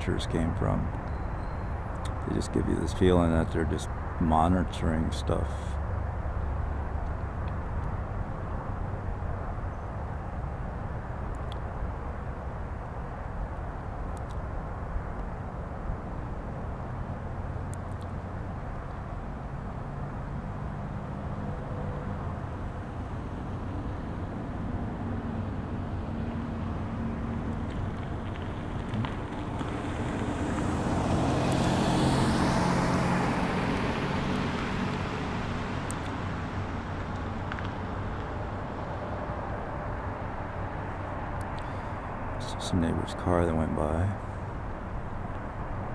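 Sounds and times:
car passing by: 19.8 - 37.6.

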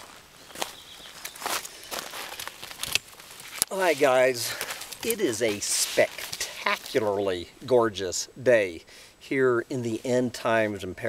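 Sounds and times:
rustling and crunching scuffs: 0.0 - 7.1.

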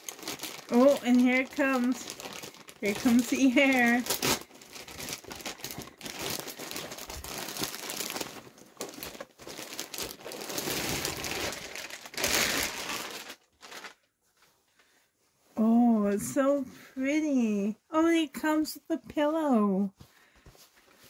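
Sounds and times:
plastic packaging crinkling: 0.0 - 14.2.

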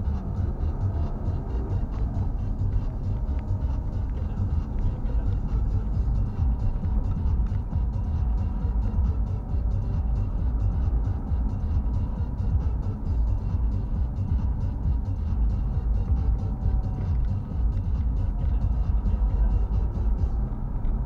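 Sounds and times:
car engine and road noise: 0.0 - 21.0
faint music: 0.0 - 21.0.

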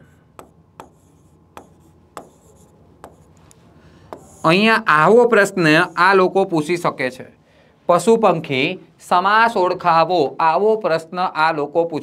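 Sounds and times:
pen scratching on tablet: 0.4 - 3.4, 4.1 - 4.7.

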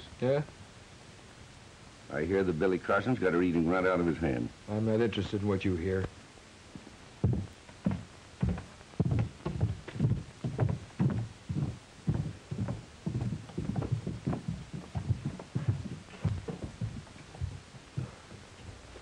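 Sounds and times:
boots walking on wooden boardwalk: 6.8 - 19.0.

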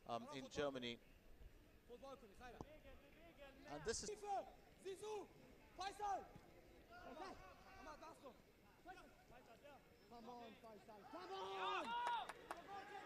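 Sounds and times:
men shouting and calling: 11.0 - 13.0.

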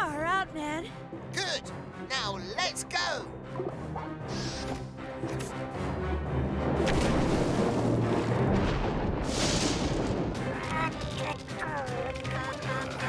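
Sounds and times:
cartoon background music: 0.0 - 8.6, 10.2 - 13.0
thunder rumble: 6.7 - 11.2.

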